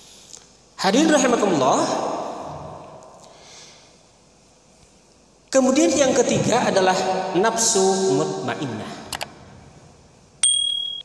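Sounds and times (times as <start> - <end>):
high notification bell ding: 10.4 - 11.0.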